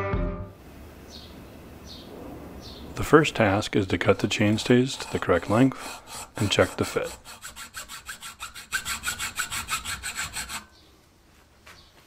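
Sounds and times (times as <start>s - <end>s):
hacksaw cutting steel tube: 3.4s - 10.8s.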